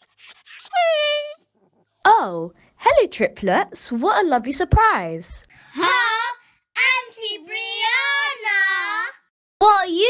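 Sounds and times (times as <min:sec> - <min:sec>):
high dog-like whine: 0:00.0 - 0:02.0
very high squeaks: 0:00.0 - 0:02.0.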